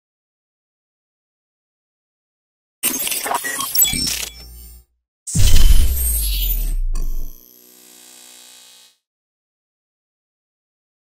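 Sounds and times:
deep rumbling boom: 5.4s - 6.1s.

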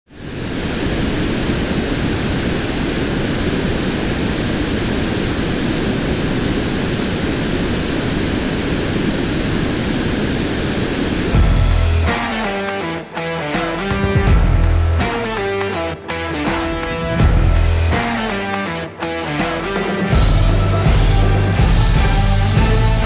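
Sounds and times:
deep bass hit: 11.4s - 12.1s, 14.3s - 15.0s, 17.0s - 18.0s
guitar-driven music: 11.4s - 23.0s.

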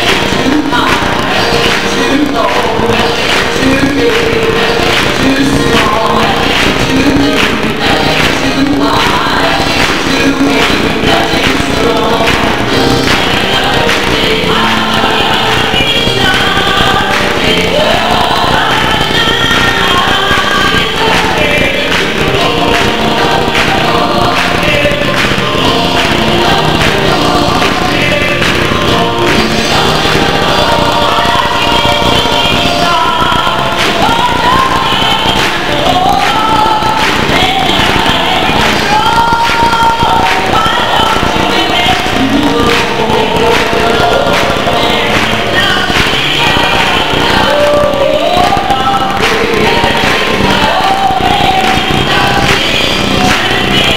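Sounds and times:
choir singing gospel song: 0.0s - 53.9s.

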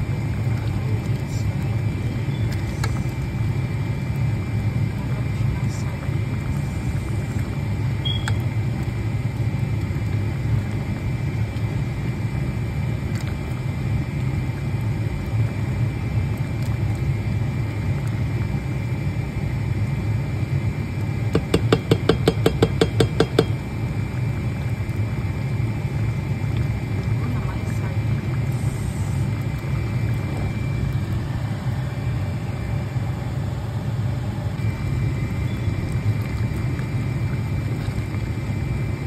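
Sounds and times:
steady low rumble: 0.0s - 21.3s, 23.4s - 39.0s
wooden spoon clicking on steel pot: 21.4s - 23.6s.

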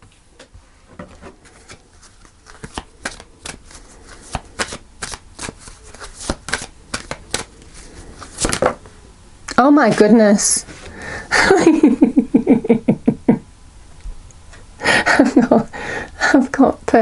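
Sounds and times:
cards being shuffled: 1.1s - 8.8s.

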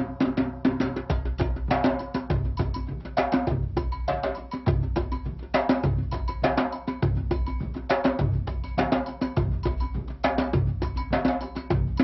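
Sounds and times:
fast steady drumming: 0.0s - 12.0s.

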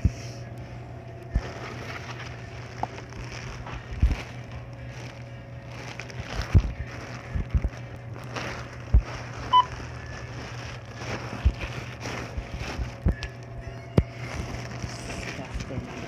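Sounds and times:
steady low hum: 0.0s - 16.0s
plastic bag rustling: 1.1s - 16.0s.

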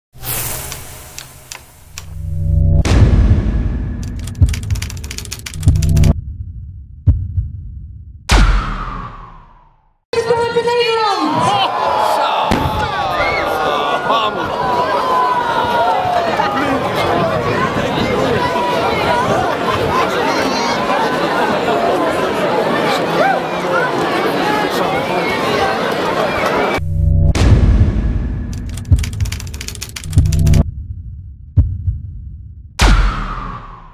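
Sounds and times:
low hum: 0.7s - 9.6s, 26.8s - 32.7s
deep rumble: 1.7s - 8.4s, 26.8s - 32.8s
low boom: 1.9s - 9.8s, 12.5s - 13.4s, 26.8s - 29.3s
rapid crackling clicks: 4.0s - 6.2s, 28.5s - 30.6s.

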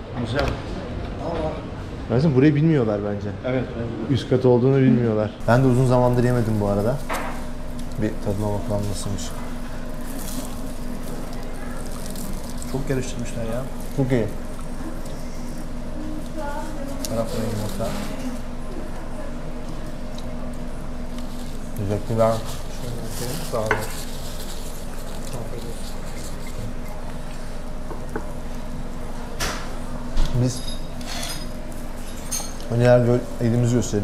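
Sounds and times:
low even hum: 5.3s - 34.0s.

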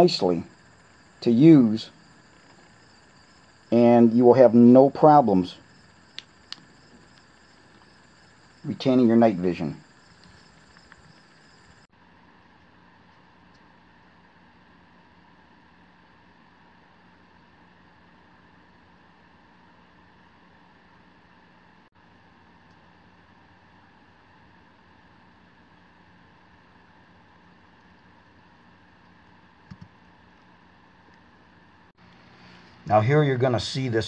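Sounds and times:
faint hiss and low hum: 0.0s - 34.0s.

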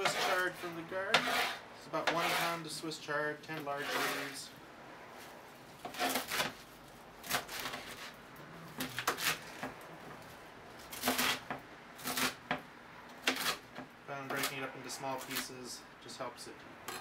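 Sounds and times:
knife chopping leaves: 10.9s - 12.6s.

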